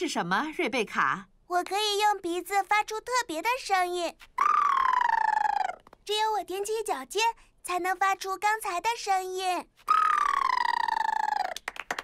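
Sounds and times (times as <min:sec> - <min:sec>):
quick patter of small claps: 0:11.6 - 0:12.0.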